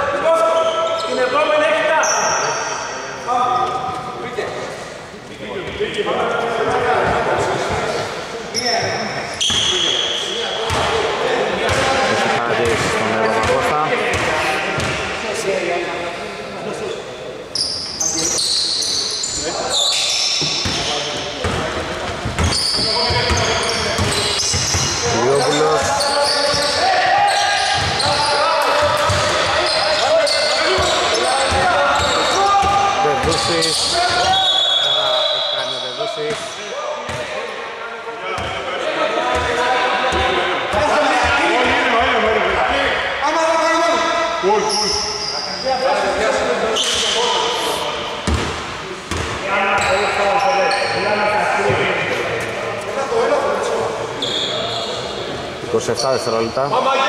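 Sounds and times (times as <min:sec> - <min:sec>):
players shouting: 0:22.4 - 0:35.6.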